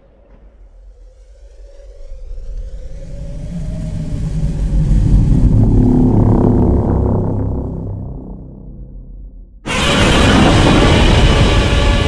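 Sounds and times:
deep cinematic rumble: 0:00.0 - 0:12.0.

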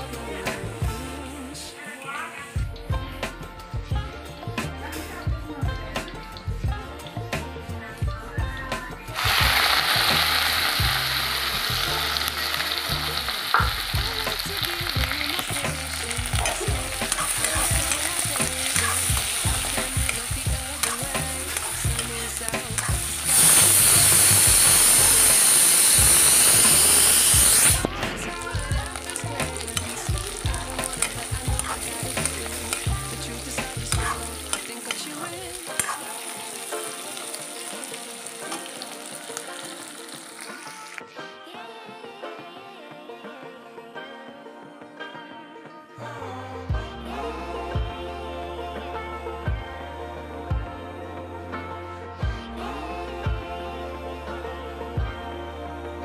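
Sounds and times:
food sizzling in hot oil: 0:08.8 - 0:41.1.

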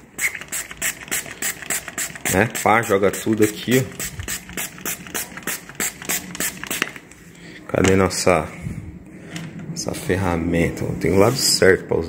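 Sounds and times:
spray bottle squirting: 0:00.0 - 0:07.0.

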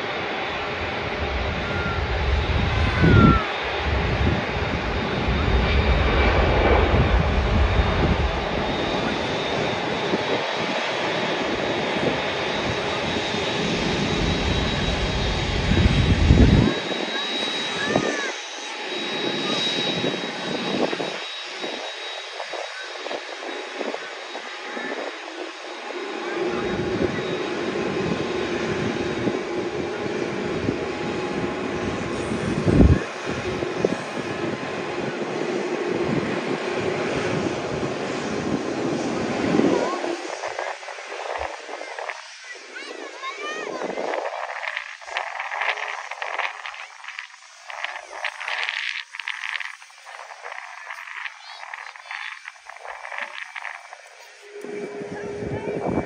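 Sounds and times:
jet engines taxiing: 0:00.0 - 0:56.0.

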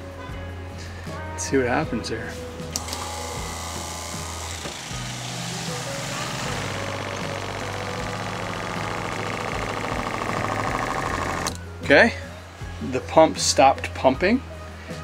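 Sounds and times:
water pump running: 0:02.8 - 0:11.5.

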